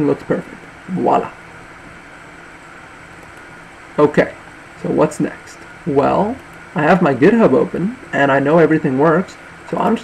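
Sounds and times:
faint hum: 0.0s - 10.0s
room tone hiss: 0.0s - 10.0s.

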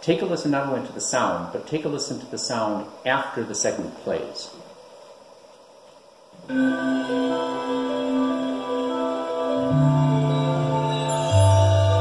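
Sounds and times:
slow music through panel speaker: 6.4s - 12.0s.

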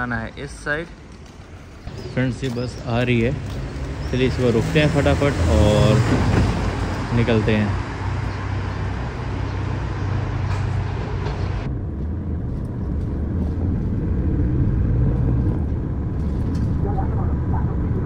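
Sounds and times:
street traffic noise: 0.0s - 18.0s.

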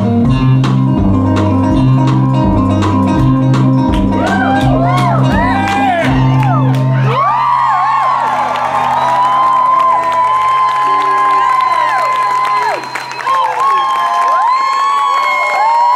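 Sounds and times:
crowd cheering and whooping: 4.1s - 15.9s
high held whistles: 12.3s - 14.3s.

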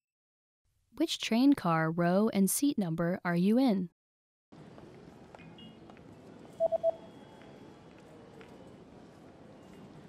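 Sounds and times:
faint background noise: 4.5s - 10.0s
quick electronic beeps: 6.6s - 7.1s.

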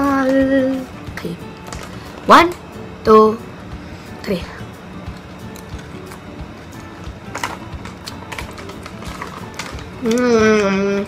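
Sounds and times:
quiet background music: 0.0s - 11.0s
potato chip crunching: 5.5s - 10.9s.

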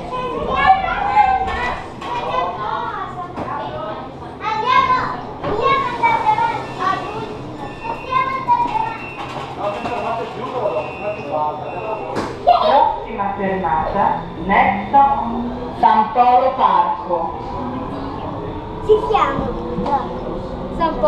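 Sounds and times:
children chattering and calling out: 0.0s - 21.0s.

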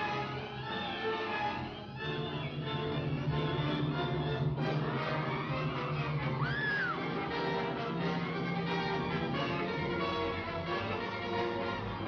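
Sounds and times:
orchestral film music: 0.0s - 12.0s.

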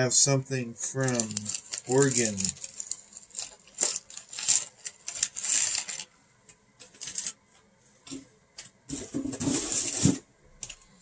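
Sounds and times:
packaging rustling: 1.0s - 6.1s, 6.8s - 7.4s.

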